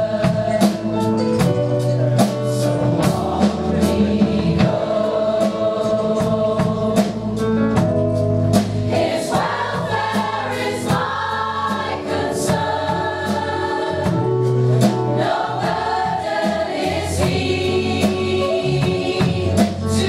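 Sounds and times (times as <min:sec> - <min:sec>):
choir singing pop song: 0:00.0 - 0:01.2, 0:02.6 - 0:07.9, 0:08.7 - 0:20.0.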